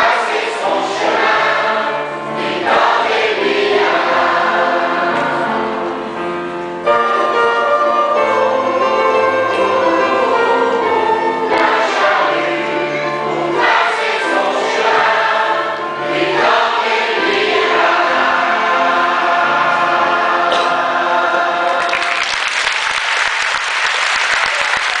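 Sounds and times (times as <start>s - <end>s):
choir singing: 0.0s - 22.2s
audience applause: 21.6s - 25.0s.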